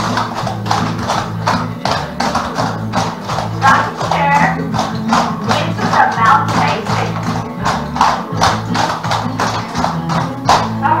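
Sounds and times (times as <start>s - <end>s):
recorded song with steady beat: 0.0s - 11.0s.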